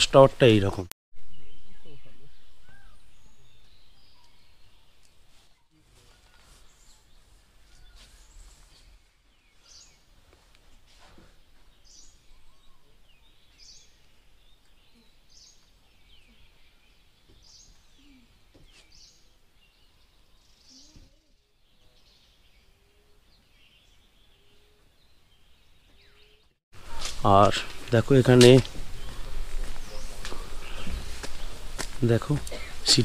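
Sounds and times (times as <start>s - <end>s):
softer lower bird calls: 1.2s - 10.1s, 11.7s - 27.3s
short high bird calls: 1.4s - 7.1s.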